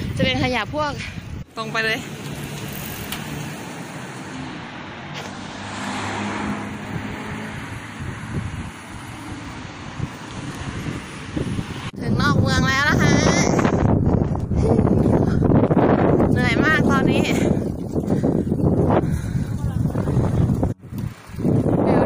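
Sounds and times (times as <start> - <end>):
cars passing close by: 1.8 - 12.0.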